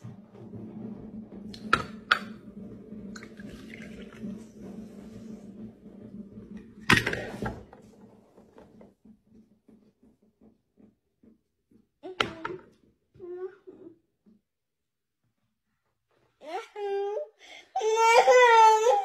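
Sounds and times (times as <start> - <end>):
liquid pouring into a cup: 3.1 - 4.5.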